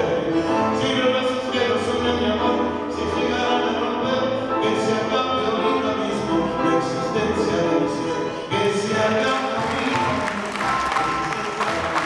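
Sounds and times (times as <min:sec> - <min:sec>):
double bass: 0:00.0 - 0:12.0
grand piano: 0:00.0 - 0:12.0.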